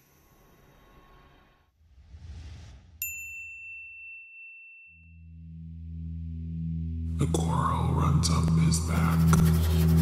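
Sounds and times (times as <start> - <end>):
high bell-like ding: 3.0 - 5.5.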